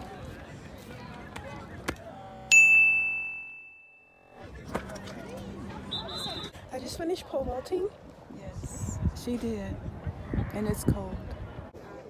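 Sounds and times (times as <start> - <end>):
bright chime ding: 2.5 - 4.3.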